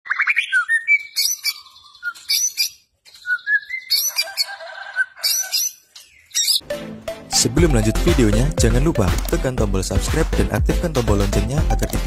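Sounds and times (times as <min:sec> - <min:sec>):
bird singing whistles and chatter: 0:00.1 - 0:04.3.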